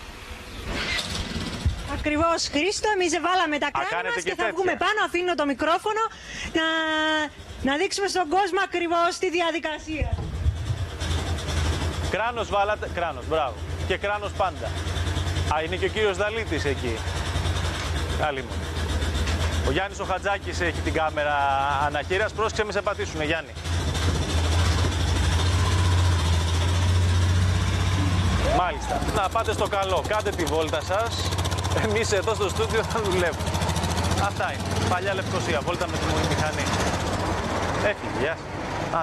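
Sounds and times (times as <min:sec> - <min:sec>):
motorcycle engine idling: 0:10.2 - 0:38.0.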